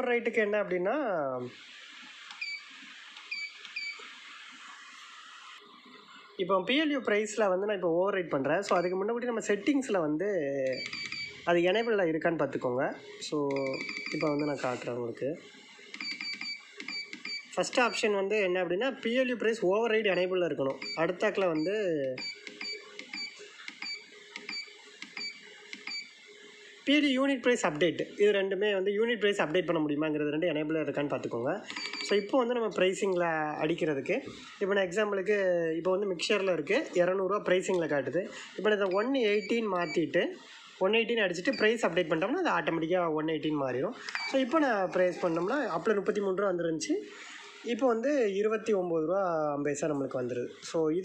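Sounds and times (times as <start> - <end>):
high electronic keypad beeps: 2.4 - 2.7, 3.3 - 4.0, 8.7 - 9.1, 10.6 - 12.0, 13.5 - 14.8, 16.0 - 18.0, 20.1 - 26.1, 31.7 - 32.4, 38.8 - 40.1, 44.1 - 44.6
short electronic keypad beeps: 10.7 - 11.4.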